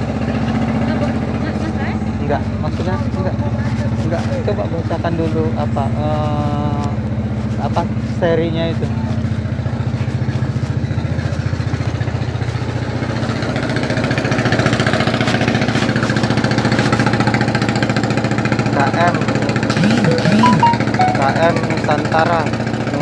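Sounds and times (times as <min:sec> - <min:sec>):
engine idling: 0:00.0 - 0:23.0
person speaking: 0:19.7 - 0:21.8.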